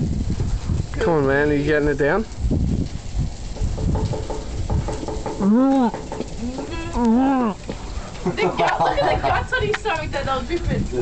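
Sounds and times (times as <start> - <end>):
man groaning: 5.4 - 7.6.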